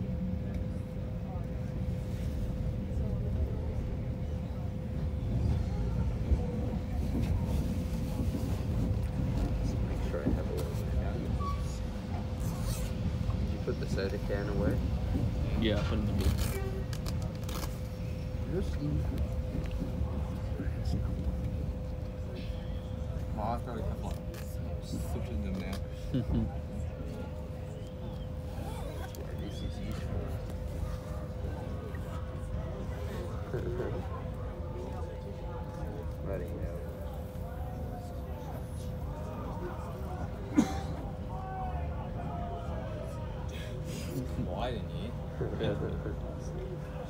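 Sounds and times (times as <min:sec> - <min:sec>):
constant hum: 0:00.0 - 0:47.0
indistinct voices murmuring: 0:00.0 - 0:47.0
train rumble inside carriage: 0:00.0 - 0:47.0.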